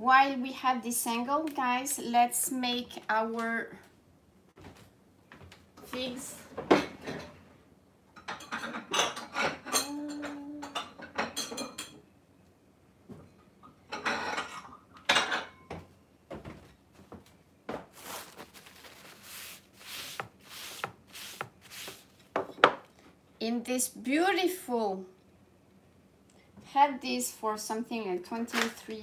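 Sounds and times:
dishes clinking and clattering: 8.2s - 12.0s, 13.2s - 15.9s.

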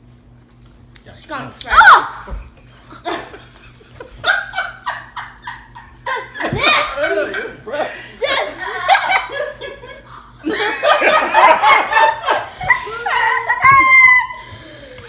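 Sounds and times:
people laughing: 2.8s - 15.0s.

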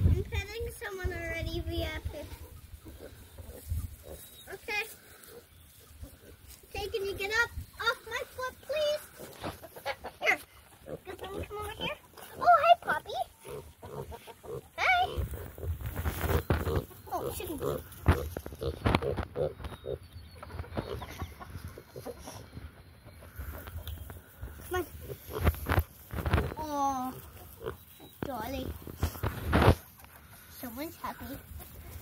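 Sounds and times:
pigs grunting: 2.8s - 6.5s, 10.7s - 20.0s, 24.2s - 27.8s
girl chattering: 6.7s - 9.1s, 10.2s - 13.4s, 14.7s - 15.3s, 16.9s - 17.9s, 24.6s - 25.2s, 26.5s - 27.3s.

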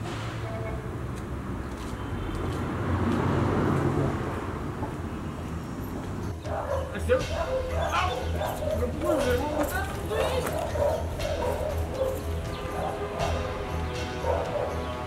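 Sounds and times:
background music: 5.7s - 15.0s
dog barking and yipping: 6.4s - 15.0s.

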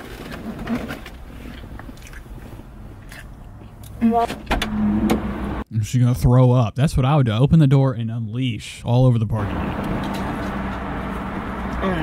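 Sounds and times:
car and traffic noise: 0.0s - 5.7s, 9.4s - 12.0s.

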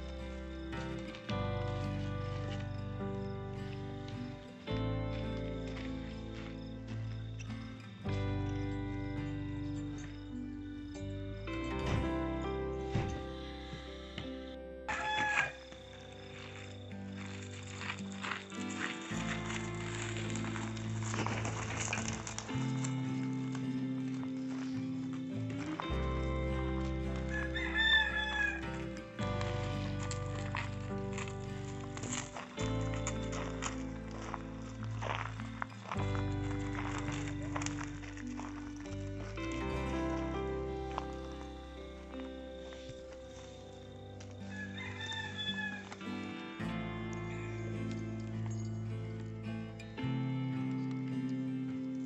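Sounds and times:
music of slow held chords: 0.0s - 52.0s
rooster crowing: 14.9s - 15.9s, 27.3s - 29.0s, 44.4s - 46.1s.

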